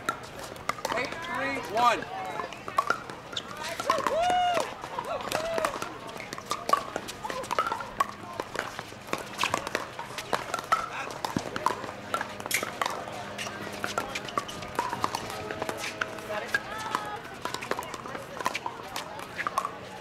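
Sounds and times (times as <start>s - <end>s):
paddles hitting plastic ball: 0.0s - 20.0s.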